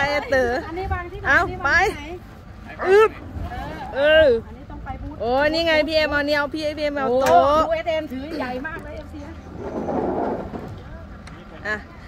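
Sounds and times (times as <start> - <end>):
low rumble: 3.2 - 11.5.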